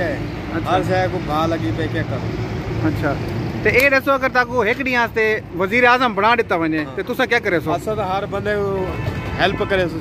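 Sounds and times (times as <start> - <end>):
man talking into microphone: 0.0 - 10.0
road traffic noise: 0.0 - 10.0.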